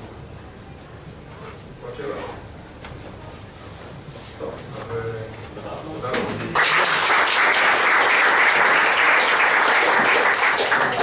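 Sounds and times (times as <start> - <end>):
faint indistinct voices: 0.0 - 6.6
low room noise: 0.0 - 11.0.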